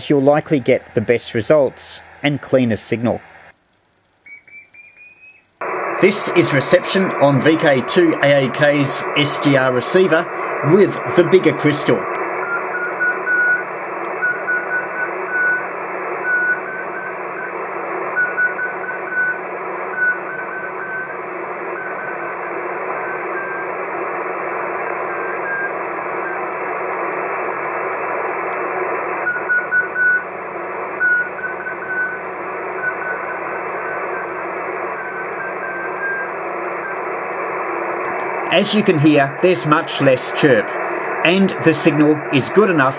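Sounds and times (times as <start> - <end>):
receiver hiss: 0.0 - 42.9
morse code beeps: 12.4 - 17.5, 18.1 - 21.1, 29.2 - 30.3, 31.0 - 34.2.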